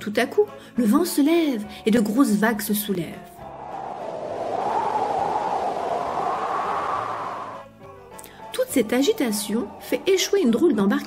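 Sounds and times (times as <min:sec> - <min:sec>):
rushing wind: 0:03.4 - 0:07.8
surging sea waves: 0:03.5 - 0:07.7.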